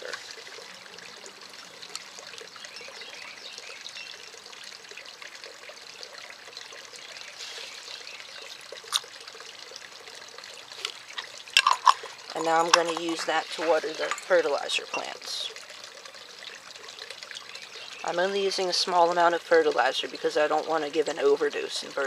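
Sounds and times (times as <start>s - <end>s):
faint steady hiss: 0.0s - 22.0s
liquid squirted from syringe: 7.3s - 9.2s, 10.7s - 14.3s.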